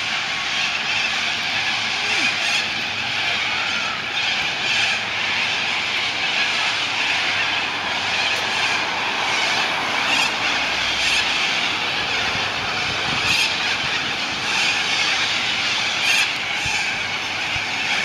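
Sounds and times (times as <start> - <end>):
cockatoos screeching: 0.0 - 18.0.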